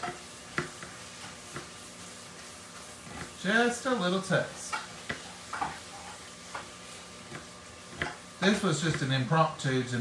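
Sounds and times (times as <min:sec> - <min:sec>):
knife tapping on cutting board: 0:00.0 - 0:00.9, 0:07.3 - 0:08.2.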